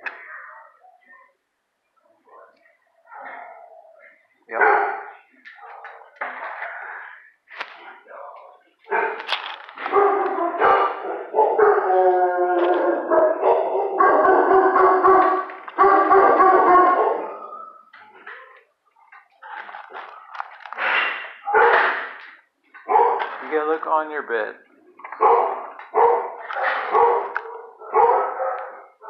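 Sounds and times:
dogs barking: 4.5s - 6.2s, 8.9s - 17.9s, 21.4s - 22.2s, 22.8s - 23.5s, 25.0s - 29.0s
dogs howling: 9.8s - 17.9s.

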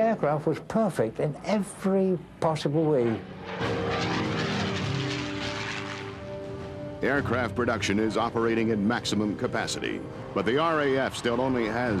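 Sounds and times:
propeller plane engine droning: 2.6s - 7.0s.

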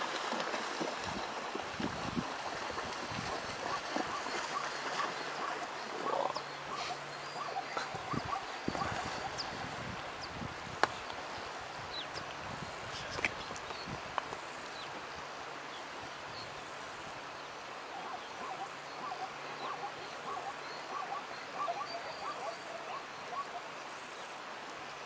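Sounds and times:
steady background hiss: 4.3s - 25.0s
herd animals calling: 18.0s - 23.6s.

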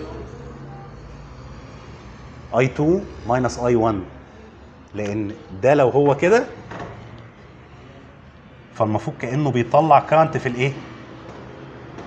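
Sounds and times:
faint indistinct voices: 0.0s - 9.8s.

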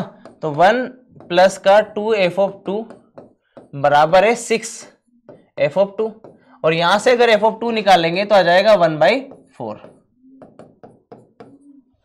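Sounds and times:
marker writing on whiteboard: 0.0s - 12.0s.

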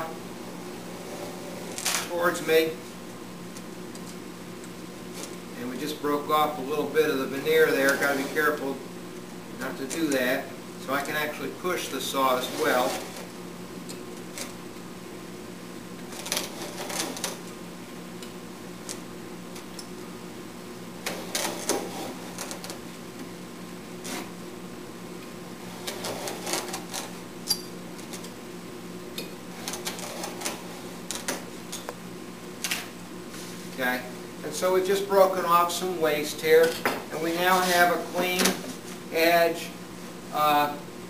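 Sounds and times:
steady low hum: 0.0s - 41.0s.

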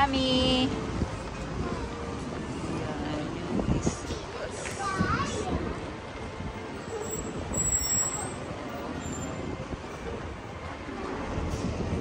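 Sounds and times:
motor vehicle rumbling: 0.0s - 12.0s
street noise: 0.0s - 12.0s.

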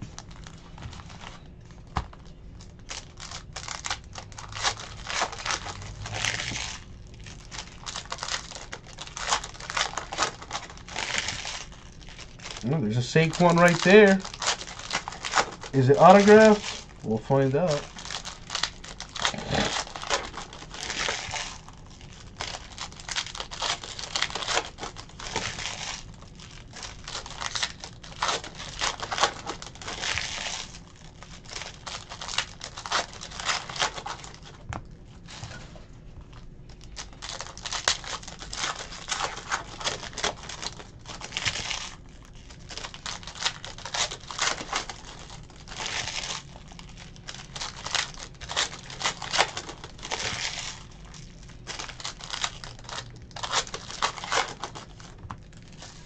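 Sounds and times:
foil wrappers crinkling and tearing: 0.0s - 56.0s.

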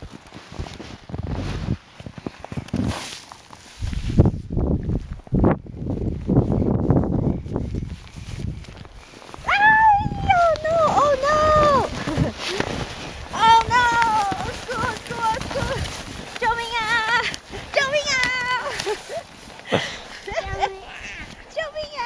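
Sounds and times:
child laughing: 18.5s - 21.5s
child squealing and babbling: 20.4s - 22.0s.

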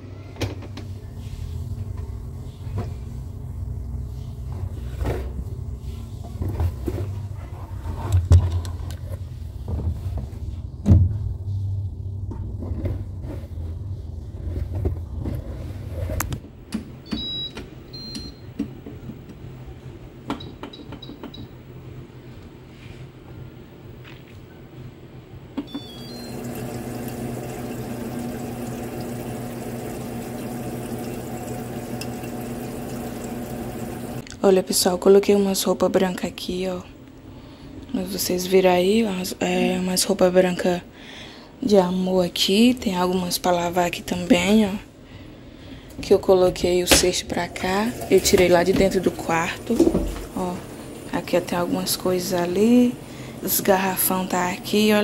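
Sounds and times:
short electronic beeps: 25.7s - 26.3s
water running into tub: 25.9s - 34.2s, 47.3s - 55.0s.

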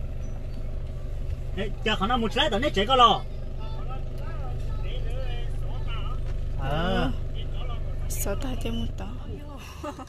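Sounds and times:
voices talking: 0.0s - 9.7s
car engine rumble: 0.0s - 10.0s
road noise inside car: 0.0s - 10.0s.

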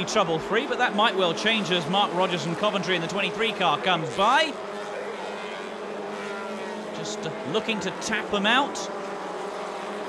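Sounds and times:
race car engines droning: 0.0s - 10.0s.

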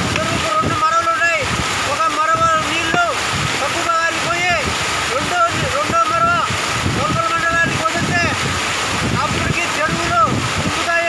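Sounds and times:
man speaking loudly: 0.0s - 11.0s
wind buffeting microphone: 0.0s - 11.0s.

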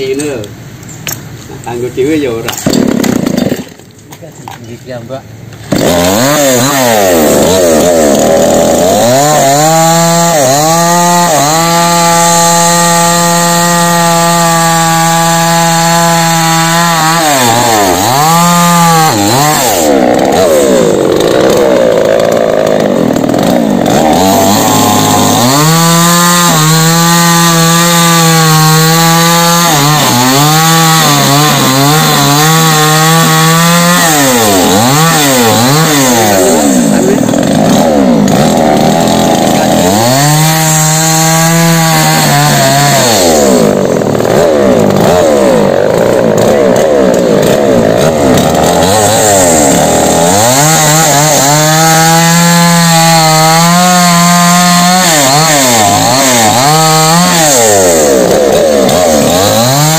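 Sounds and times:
chainsaw revving: 1.8s - 3.9s, 5.5s - 59.9s
chainsaw sawing into trunk: 2.1s - 4.3s, 5.6s - 59.9s.

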